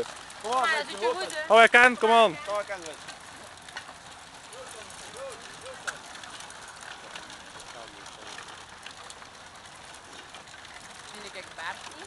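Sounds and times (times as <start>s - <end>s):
bicycles rattling over cobblestones: 0.0s - 12.0s.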